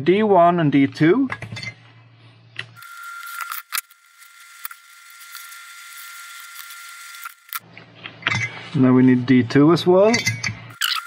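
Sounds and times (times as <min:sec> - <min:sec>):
steady high whine: 0:02.8 - 0:07.6.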